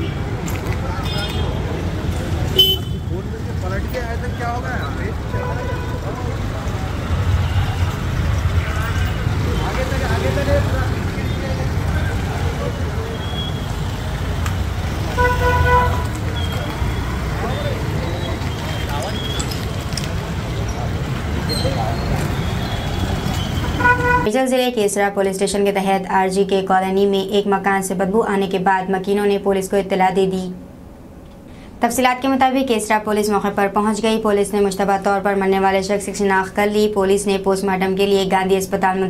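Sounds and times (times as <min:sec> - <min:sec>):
people's voices: 0:00.0 - 0:30.6
traffic and motorbikes rumbling: 0:00.0 - 0:39.0
vehicle horn: 0:02.5 - 0:03.1, 0:05.3 - 0:06.2, 0:15.1 - 0:16.2, 0:22.4 - 0:24.3.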